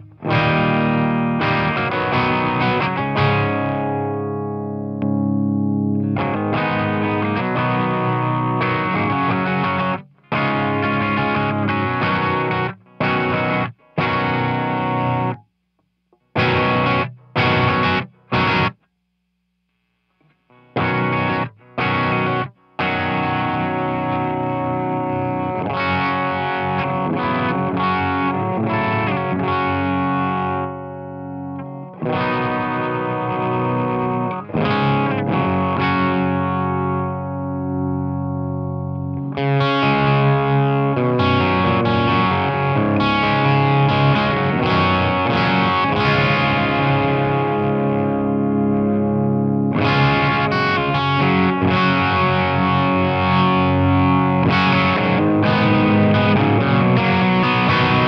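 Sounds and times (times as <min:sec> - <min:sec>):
electric guitar playing: 0:00.0 - 0:15.4, 0:16.1 - 0:18.9, 0:20.5 - 0:58.0.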